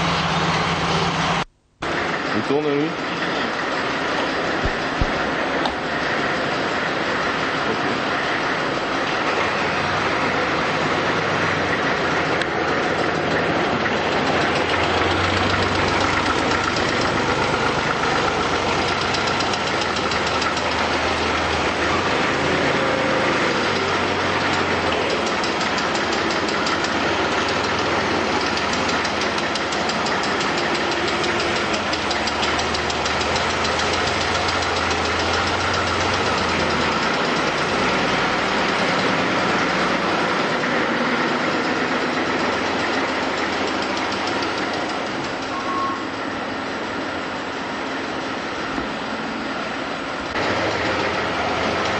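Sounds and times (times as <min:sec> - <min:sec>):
assembly line machinery noise: 0:00.0 - 0:51.9
low engine-like hum: 0:00.0 - 0:51.9.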